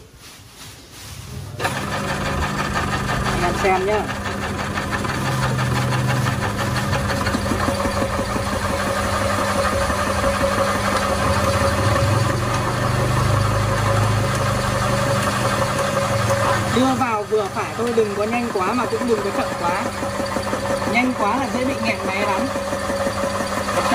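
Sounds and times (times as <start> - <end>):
meat grinder motor humming: 1.6 - 23.9.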